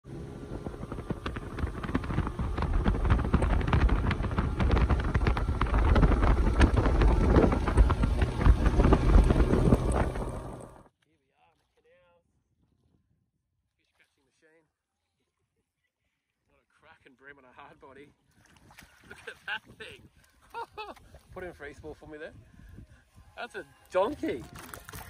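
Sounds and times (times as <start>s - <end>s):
outboard engine drone: 0.0s - 10.9s
wind buffeting microphone: 0.1s - 10.8s, 21.0s - 23.4s.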